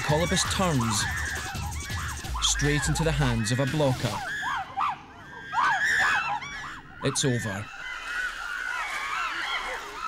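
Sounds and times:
primates screaming: 0:00.0 - 0:10.0.

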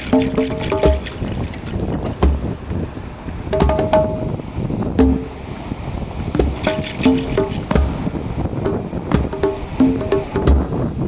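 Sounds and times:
wind buffeting microphone: 0:00.0 - 0:11.0
low thump: 0:02.1 - 0:02.6, 0:08.6 - 0:10.7.

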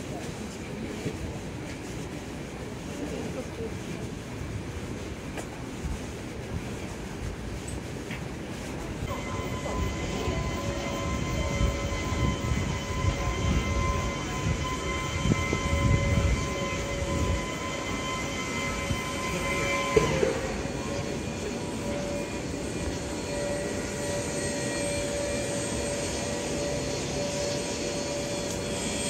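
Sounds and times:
walking crowd noise: 0:00.0 - 0:29.0
steady multi-pitch tone: 0:09.0 - 0:29.0.

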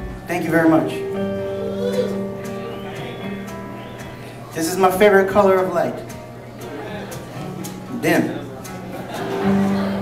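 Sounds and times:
acoustic guitar played softly: 0:00.0 - 0:10.0.

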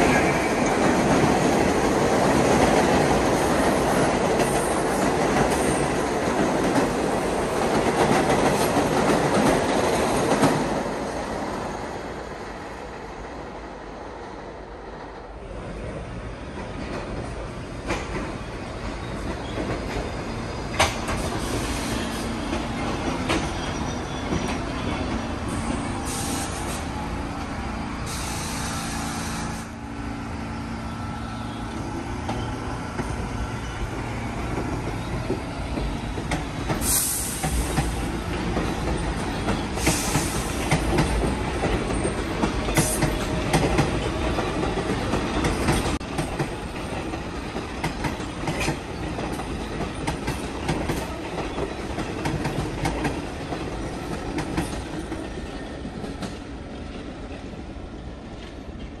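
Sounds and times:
subway train rumbling past: 0:00.0 - 0:59.0
wheel squeal: 0:23.0 - 0:26.7.

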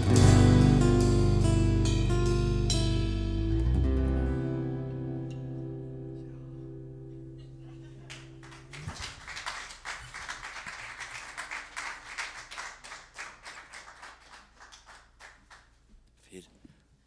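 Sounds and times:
acoustic guitar and bass chord: 0:00.0 - 0:08.8
audience clapping: 0:07.9 - 0:15.9.

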